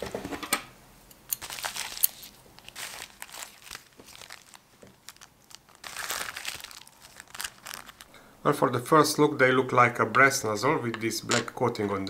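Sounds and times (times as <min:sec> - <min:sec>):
plastic packaging crinkling: 0:01.3 - 0:08.1.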